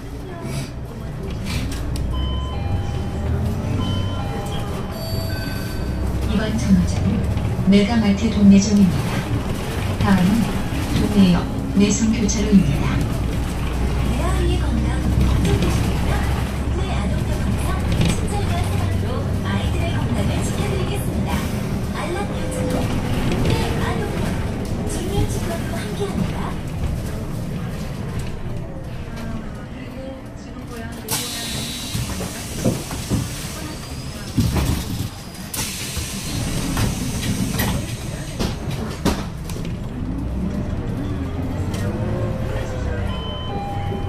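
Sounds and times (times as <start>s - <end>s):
bus engine and road rumble: 0.0s - 44.0s
faint voices: 0.0s - 44.0s.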